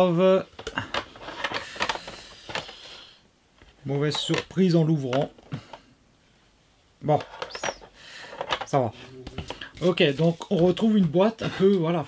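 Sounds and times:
paper and cardboard rustling: 7.1 - 11.9.

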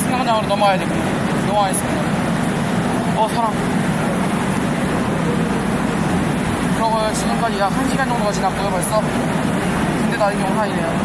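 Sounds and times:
crowd noise: 0.0 - 11.0
train noise: 0.0 - 11.0.

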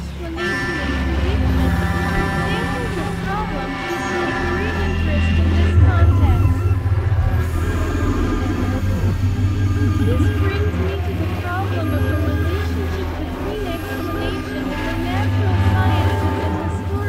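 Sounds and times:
electronic synthesizer drone music: 0.0 - 17.0.

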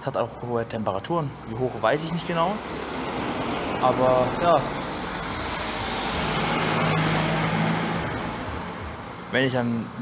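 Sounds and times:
motor vehicle passing: 1.3 - 10.0.

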